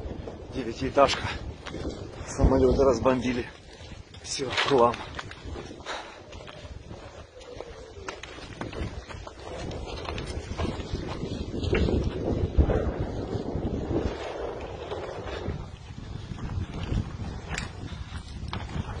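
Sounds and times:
footsteps crunching over debris: 0.0 - 19.0
wind buffeting microphone: 0.0 - 19.0.

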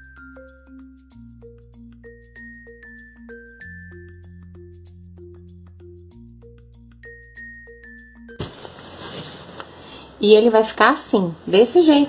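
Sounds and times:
mallet percussion music: 0.0 - 8.4
fabric rustling: 8.4 - 10.1.

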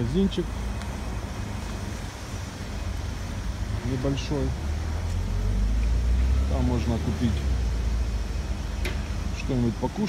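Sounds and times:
low rumble of vehicles: 0.0 - 10.0.

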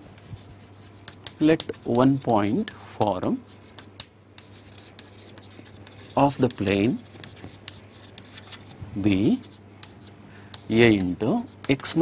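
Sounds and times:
steady low hum: 0.0 - 12.0
chalk scratching on chalkboard: 0.2 - 12.0.

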